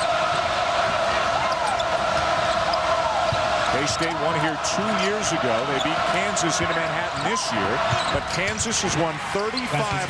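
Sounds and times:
arena crowd noise: 0:00.0 - 0:10.0
shoe squeaks: 0:05.7 - 0:08.6
basketball bouncing: 0:07.8 - 0:08.6.

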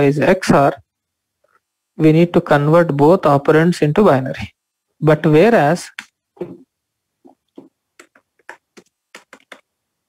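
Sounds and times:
computer keyboard typing: 0:07.5 - 0:09.7.

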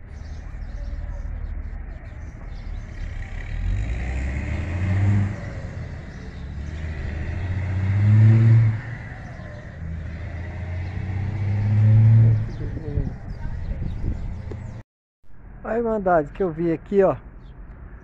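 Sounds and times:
motorcycle engine accelerating: 0:02.8 - 0:14.8.

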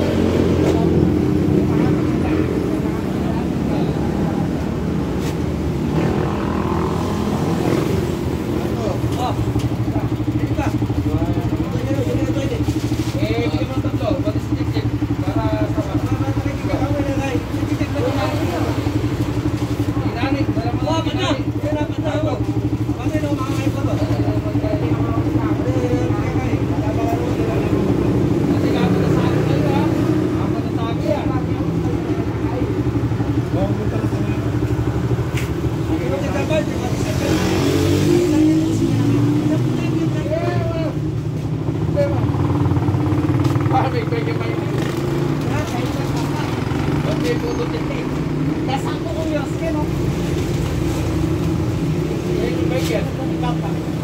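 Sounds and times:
indistinct voices talking: 0:00.0 - 0:54.0.

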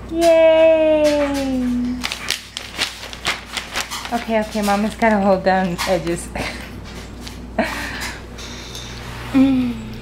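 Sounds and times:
paper rustling: 0:01.7 - 0:06.6.

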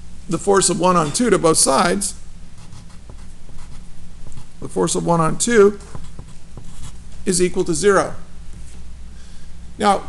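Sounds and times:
pen scratching on paper: 0:02.6 - 0:04.5, 0:05.8 - 0:07.0.

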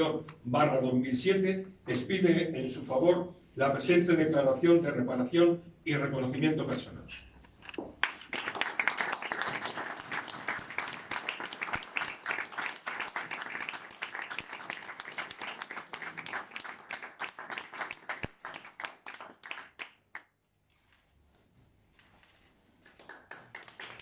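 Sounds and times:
audience applauding: 0:08.0 - 0:20.1, 0:22.9 - 0:24.0.

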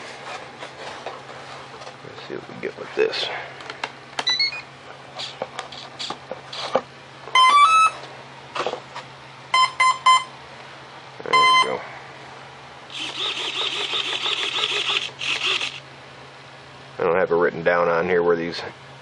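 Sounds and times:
motor start-up tones and beeps: 0:04.3 - 0:04.7, 0:07.4 - 0:08.0, 0:11.3 - 0:11.8, 0:12.9 - 0:15.8
servo whirring: 0:12.9 - 0:15.8.

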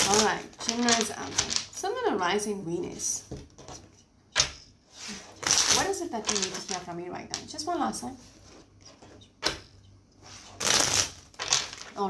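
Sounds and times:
cards riffle-shuffled: 0:05.1 - 0:06.8, 0:10.4 - 0:12.0.

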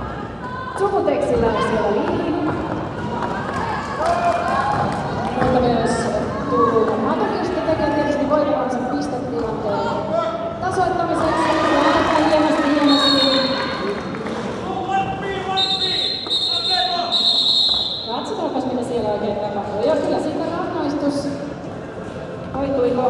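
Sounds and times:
voices shouting in a hall: 0:00.0 - 0:20.2
referee whistle blasts: 0:15.6 - 0:18.3.

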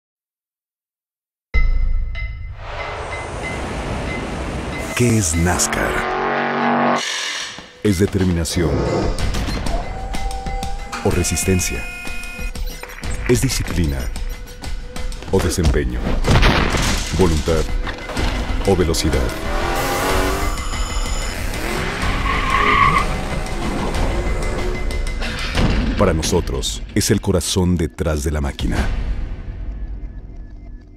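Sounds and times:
race car engine revving: 0:04.8 - 0:07.0, 0:19.0 - 0:25.1
tyres squealing: 0:20.2 - 0:23.2.

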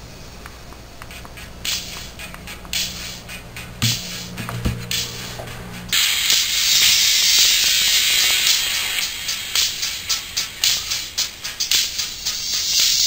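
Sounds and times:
thin music through earphone: 0:00.0 - 0:13.0.

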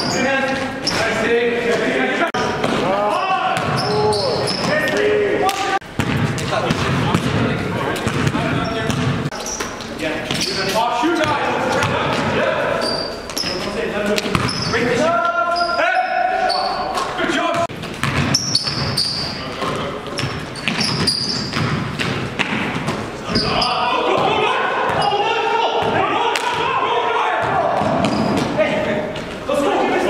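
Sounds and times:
sneakers squeaking: 0:00.0 - 0:30.0
players shouting: 0:01.0 - 0:05.9, 0:23.3 - 0:30.0
basketball bouncing on court: 0:03.5 - 0:04.9, 0:05.8 - 0:10.6, 0:11.2 - 0:12.4, 0:14.2 - 0:14.7, 0:16.9 - 0:26.8, 0:27.4 - 0:29.4.

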